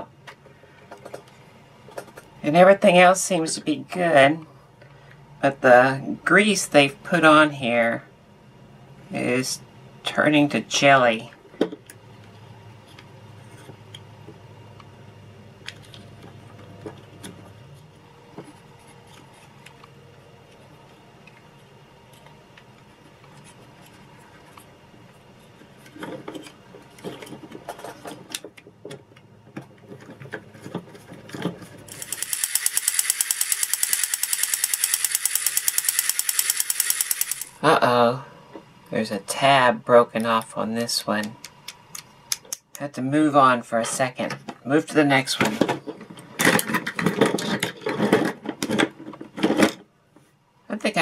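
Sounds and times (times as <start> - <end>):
plastic parts clicking and knocking: 0.3 - 2.3, 25.8 - 37.6, 45.4 - 49.8
fast mechanical rattle: 29.9 - 37.6.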